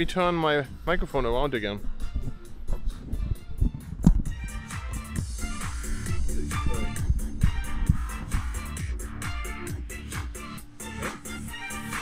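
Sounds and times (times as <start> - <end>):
music with a steady beat: 1.8 - 12.0.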